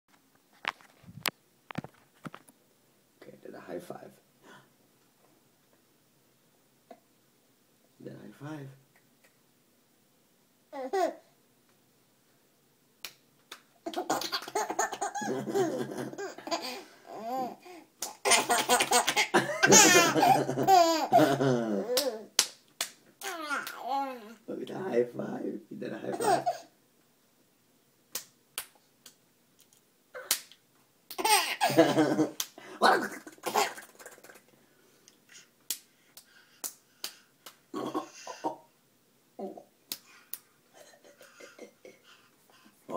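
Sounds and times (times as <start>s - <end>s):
laughter: 19.3s - 21.8s, 31.7s - 32.4s.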